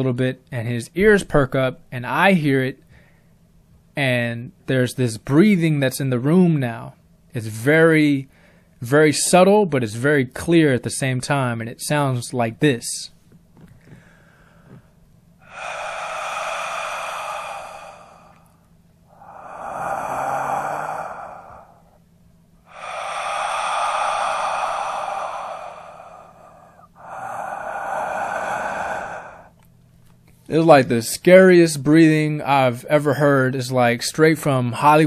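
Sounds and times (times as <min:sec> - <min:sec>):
man breathing heavily: 0:13.7 - 0:29.7.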